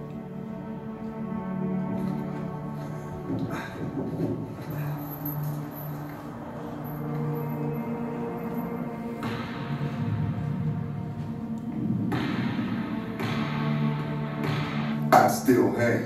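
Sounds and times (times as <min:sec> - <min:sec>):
film score with sustained low notes: 0:00.0 - 0:16.0
thick noisy music layer: 0:00.0 - 0:16.0.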